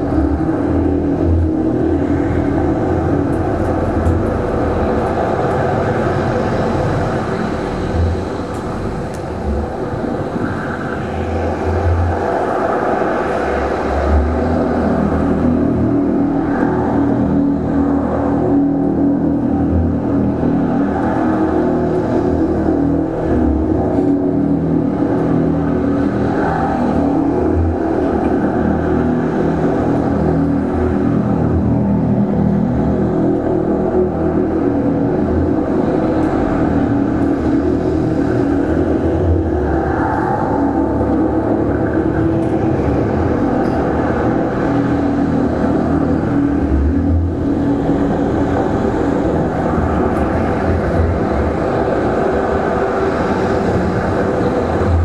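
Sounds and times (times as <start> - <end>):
electroacoustic noise music drone: 0.0 - 55.0.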